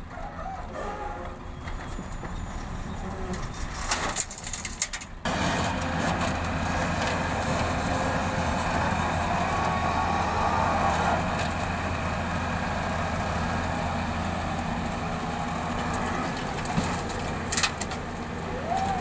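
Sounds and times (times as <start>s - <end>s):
excavator diesel engine running: 5.2s - 19.0s.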